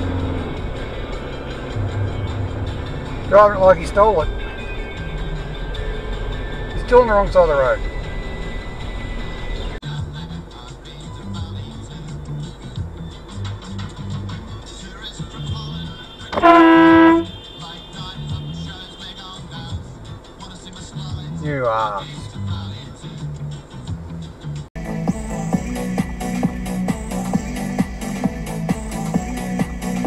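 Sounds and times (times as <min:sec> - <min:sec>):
background music with steady beat: 0:00.0 - 0:30.0
car horn blast: 0:15.4 - 0:18.7.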